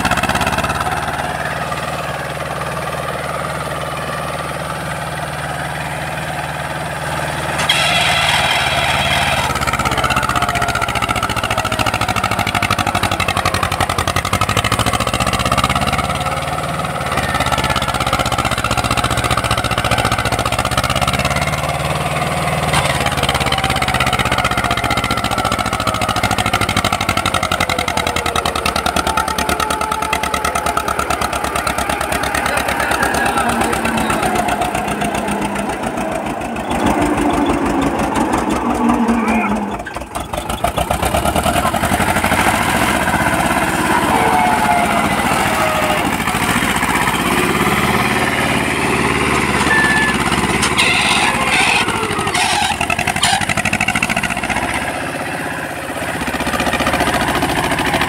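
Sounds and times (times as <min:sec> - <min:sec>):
tractor diesel engine under load: 0:00.0 - 0:58.0.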